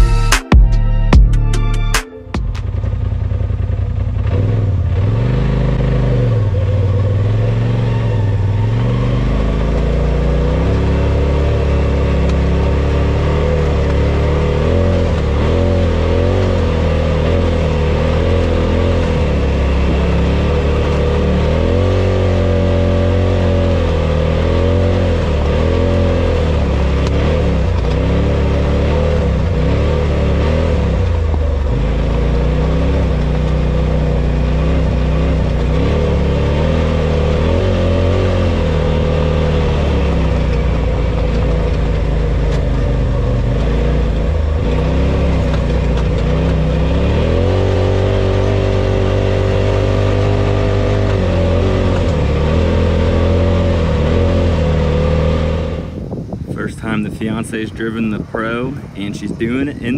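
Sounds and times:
off-road vehicle engine revving: 1.0s - 59.9s.

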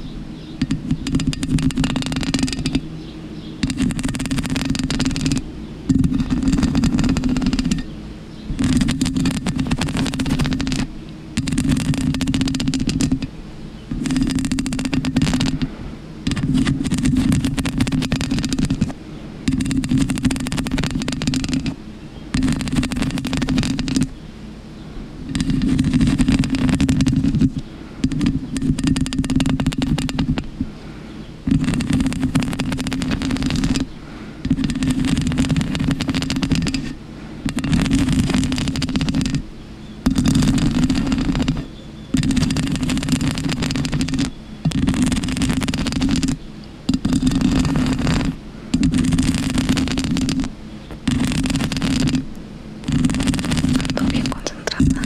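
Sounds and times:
fingernails scratching microphone foam: 0.6s - 2.9s, 3.6s - 13.3s, 13.9s - 24.2s, 25.2s - 30.8s, 31.4s - 55.0s.

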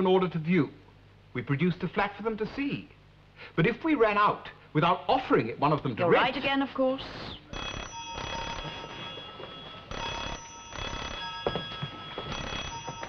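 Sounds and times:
telephone bell ringing: 7.5s - 13.0s.

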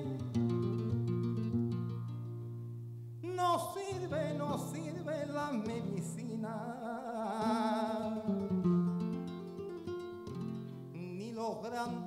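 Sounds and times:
flamenco guitar plucking: 0.0s - 12.0s.

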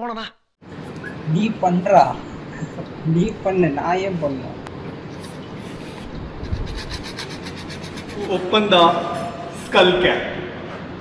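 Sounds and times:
saw rasping through bone: 5.8s - 8.4s.

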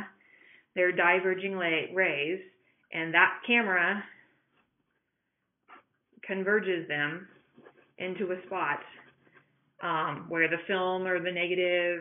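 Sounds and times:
soft breath: 0.1s - 0.8s.

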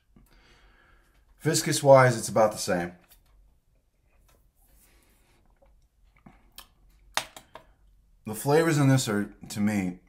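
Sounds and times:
mouth clicks and smacks: 5.6s - 7.7s.

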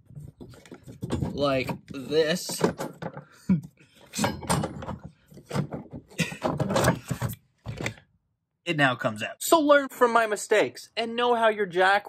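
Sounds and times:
man laughing: 3.4s - 3.7s, 6.1s - 6.6s.

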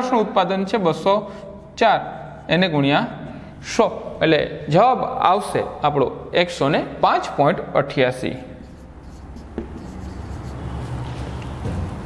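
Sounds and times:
marker scratching on whiteboard: 8.5s - 12.0s
marker tap on whiteboard: 9.4s - 10.0s.

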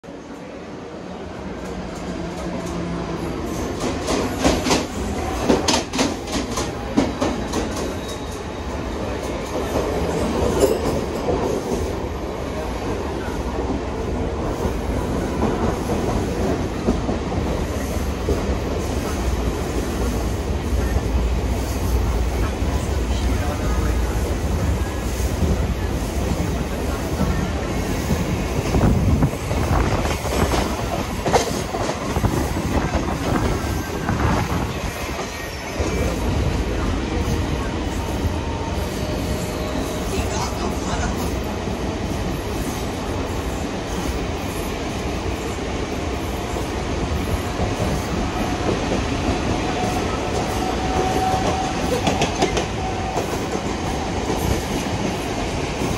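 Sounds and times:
train wheels rumbling on rails: 0.0s - 55.9s.

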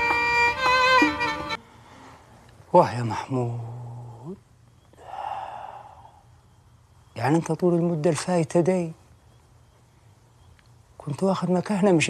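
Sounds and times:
man sighing: 5.0s - 6.2s.

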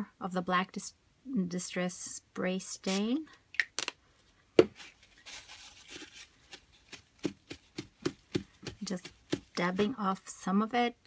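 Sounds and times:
paper towel rustling: 4.8s - 8.7s
light dabbing taps: 6.5s - 10.0s.

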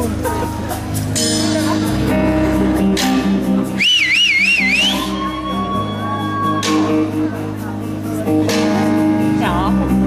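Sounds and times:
electric guitar picking: 0.0s - 10.0s
warbling whistle from crowd: 3.8s - 6.8s.

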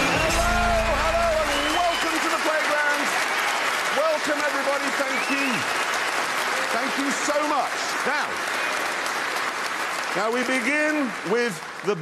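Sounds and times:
studio audience applauding: 0.0s - 12.0s.

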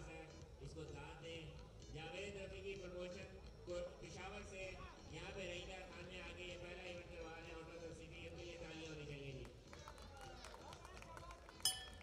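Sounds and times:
faint hall chatter: 8.8s - 11.6s
boxing ring bell: 11.6s - 12.0s.

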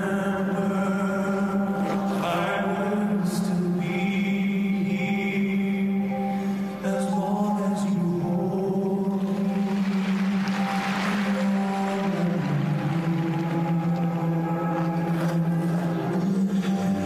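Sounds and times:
slow music with low notes: 0.0s - 17.0s.

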